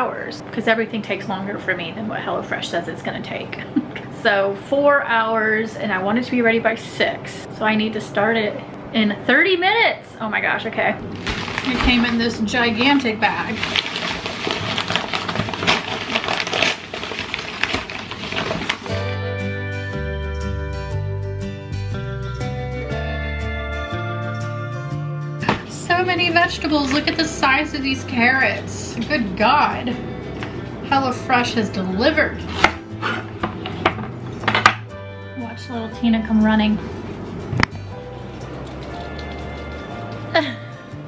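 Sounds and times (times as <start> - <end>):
stiff paper bag crinkling: 11.0 - 19.2.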